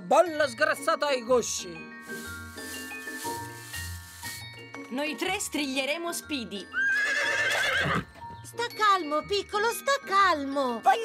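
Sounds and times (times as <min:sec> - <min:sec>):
soft background music: 0:00.0 - 0:11.0
bristle brush scrubbing: 0:02.0 - 0:04.6.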